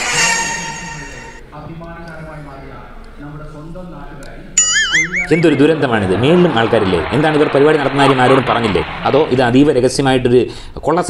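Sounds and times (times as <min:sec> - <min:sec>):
electronic warbling tone: 0:04.6 - 0:09.8.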